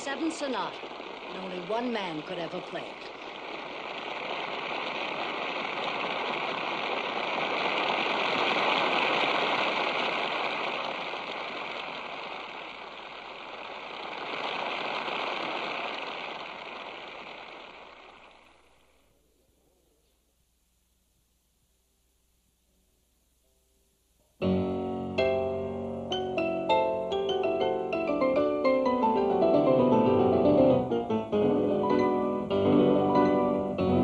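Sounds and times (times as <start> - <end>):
audience applauding: 0.0 - 18.3.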